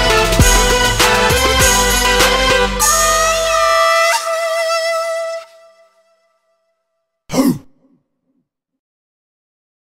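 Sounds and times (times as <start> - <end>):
trap beat: 0.0 - 4.1
gruff vocal shout: 7.3 - 7.8.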